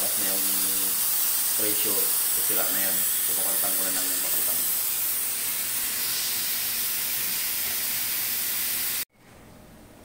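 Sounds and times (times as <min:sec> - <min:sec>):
steam hissing from valve: 0:00.0 - 0:09.1.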